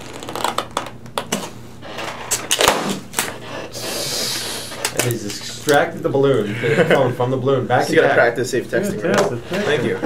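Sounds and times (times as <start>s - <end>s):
rubber balloon squeaks and snaps: 0.0s - 1.6s, 2.3s - 3.4s
air hissing from balloon: 3.3s - 5.0s.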